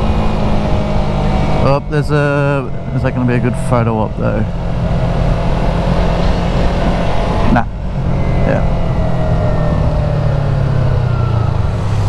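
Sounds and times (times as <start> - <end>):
motorcycle engine cruising: 0.0 - 12.0
wind rush: 0.0 - 12.0.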